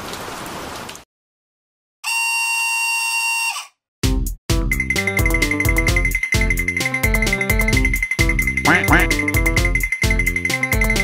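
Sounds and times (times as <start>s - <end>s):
buzzer-like electronic tone: 2.0s - 3.7s.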